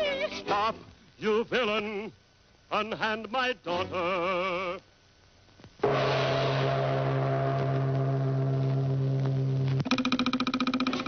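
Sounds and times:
loud low held note: 5.8 - 9.8
sudden crash: 5.8 - 9.8.

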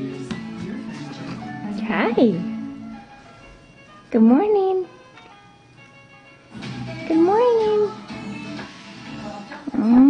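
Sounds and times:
faint television: 0.0 - 3.2, 6.5 - 10.0.

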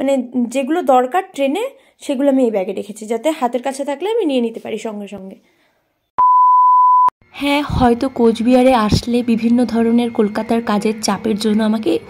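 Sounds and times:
high electronic beep: 6.2 - 7.1.

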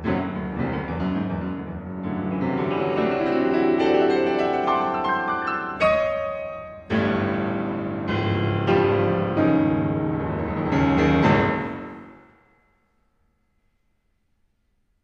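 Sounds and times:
piano chords: 0.0 - 12.8.

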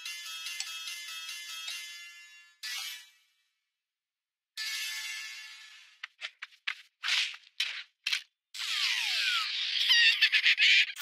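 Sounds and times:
squeaky chirps: 8.6 - 10.4
noisy cartoon scramble: 8.6 - 11.0.

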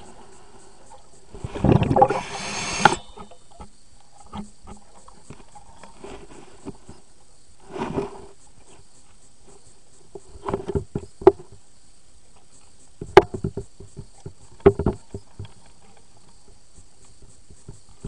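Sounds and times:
underwater water movement: 0.0 - 7.0
faint steady hiss: 0.0 - 18.0
muffled underwater knocks and taps: 13.0 - 15.6.

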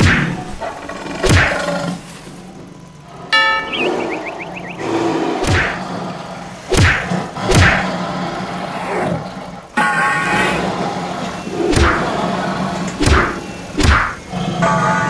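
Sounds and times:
low steady hum: 0.0 - 14.7
buzzy warbling tone: 3.3 - 5.8
cartoon punch hits with swish: 5.4 - 5.8, 6.7 - 7.8, 13.0 - 14.2.

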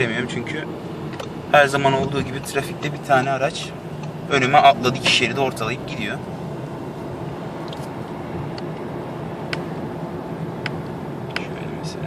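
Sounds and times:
diesel engine hum: 0.0 - 12.0
road noise: 0.0 - 12.0.

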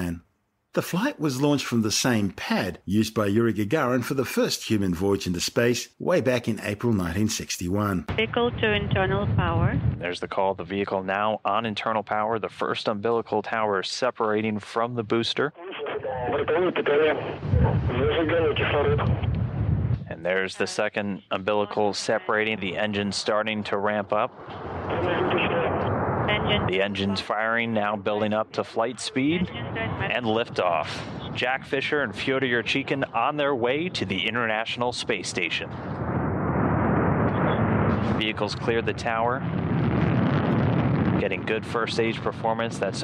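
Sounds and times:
radio voice calls: 0.0 - 0.2, 0.8 - 10.4, 15.5 - 19.3, 20.1 - 35.8
low rocket engine rumble: 6.4 - 10.4, 15.9 - 20.3, 22.3 - 43.0.

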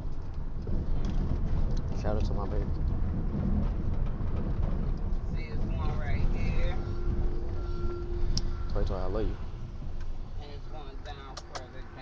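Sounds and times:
car cabin rumble: 0.0 - 12.0
steady tone: 5.3 - 11.2.

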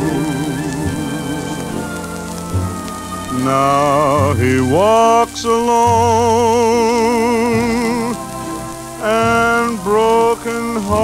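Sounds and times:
orchestra playing: 0.0 - 11.0
person singing: 0.0 - 11.0
record surface hiss and crackle: 0.0 - 11.0.

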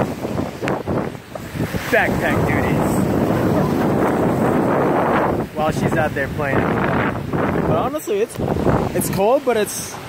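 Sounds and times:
ocean surf washing: 0.0 - 10.0
wind buffeting microphone: 0.0 - 10.0.

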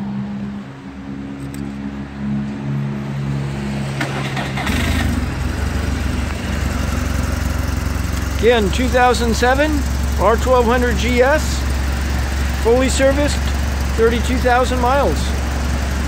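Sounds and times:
motorcycle engine idling: 5.2 - 16.0.

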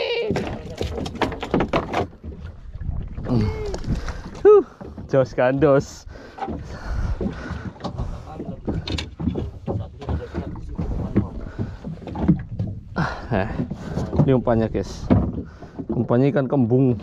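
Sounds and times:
knocks on wooden boat deck: 6.4 - 16.0.

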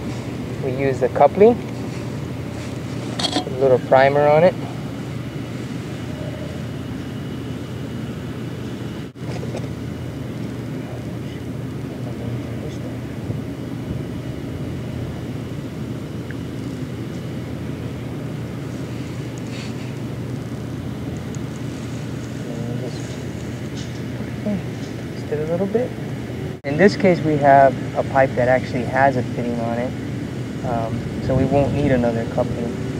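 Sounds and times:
low mechanical hum: 0.0 - 32.9.

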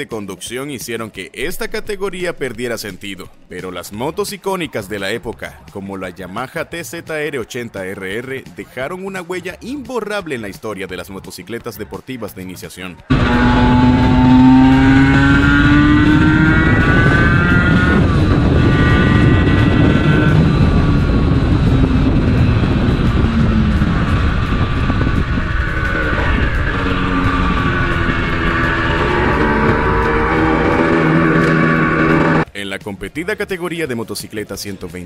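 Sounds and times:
motorcycle engine revving: 13.1 - 32.5.

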